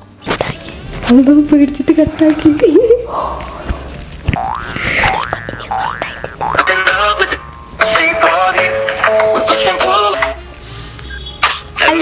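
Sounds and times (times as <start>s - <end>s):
music: 0.0s - 4.3s, 6.5s - 12.0s
cartoon rising boing: 4.3s - 6.7s.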